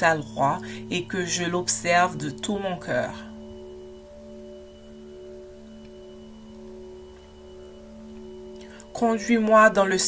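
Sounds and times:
soft sustained chord music: 0:00.0 - 0:10.0.

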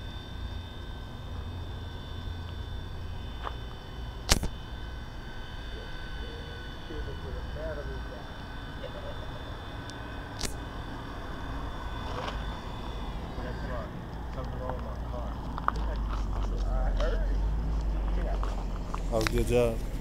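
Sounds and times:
rc helicopter rotor whine: 0:00.0 - 0:20.0
sharp clicks: 0:04.3 - 0:04.5, 0:09.9 - 0:10.6.

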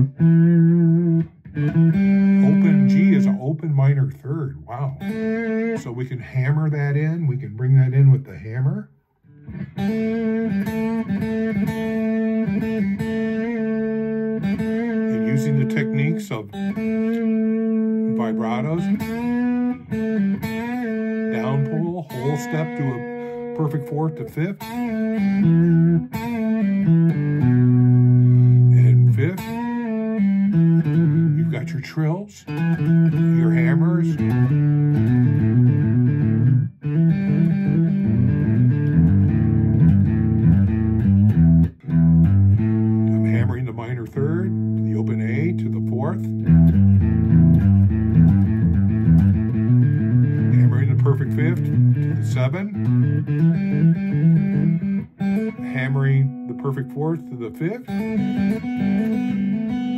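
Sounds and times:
electric guitar blues: 0:00.0 - 0:59.9.

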